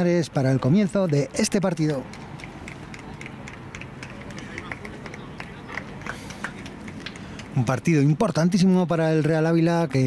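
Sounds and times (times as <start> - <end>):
faint distant voices: 0.1 - 8.8.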